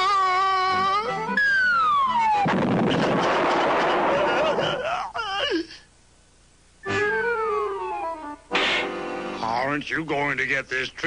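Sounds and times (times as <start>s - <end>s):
falling whistle: 1.3s - 2.5s, 6.8s - 8.9s
long crash: 2.4s - 4.7s.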